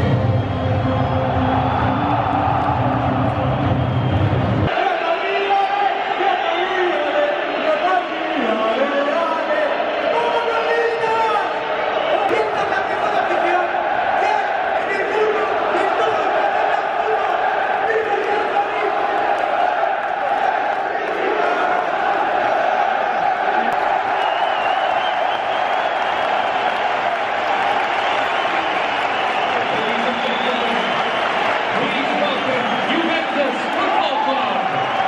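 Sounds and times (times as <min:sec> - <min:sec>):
stadium crowd singing and shouting: 0:00.0 - 0:35.0.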